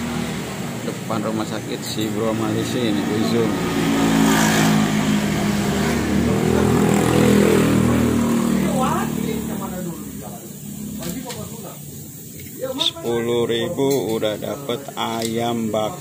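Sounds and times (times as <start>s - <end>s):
motor scooter passing: 2.2s - 10.3s
person speaking: 8.6s - 16.0s.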